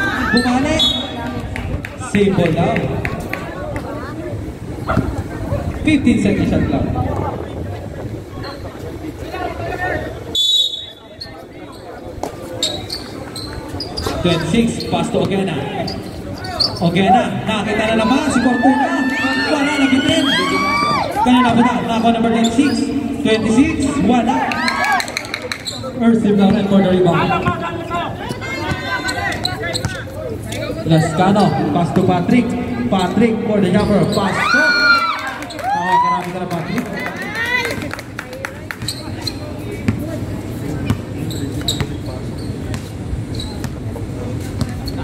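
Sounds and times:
players' voices: 0:00.0 - 0:45.0
shrill whistle blast: 0:10.4 - 0:11.1
basketball bouncing on court: 0:39.8 - 0:40.1.

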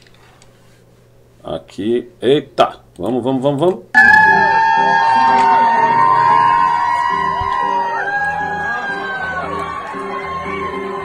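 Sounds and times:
woman singing high notes: 0:04.0 - 0:08.0
audience whooping and shouting: 0:04.0 - 0:11.0
musical accompaniment: 0:04.0 - 0:11.0.

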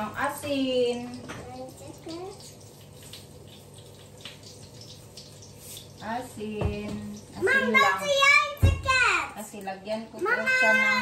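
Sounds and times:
hotdogs sizzling in oil: 0:00.0 - 0:11.0.

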